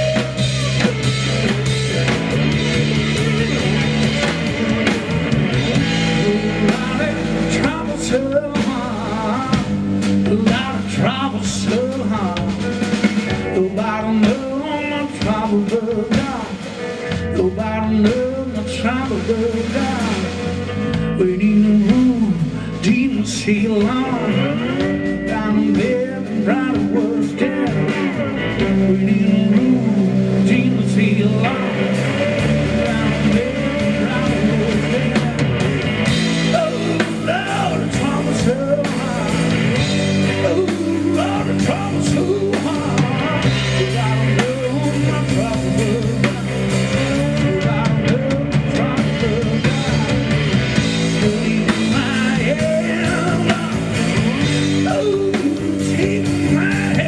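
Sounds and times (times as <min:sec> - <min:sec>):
drum kit: 0:00.0 - 0:57.0
electric bass: 0:00.0 - 0:57.0
electric guitar: 0:00.0 - 0:57.0
live blues band playing: 0:00.0 - 0:57.0
man singing: 0:00.0 - 0:57.0.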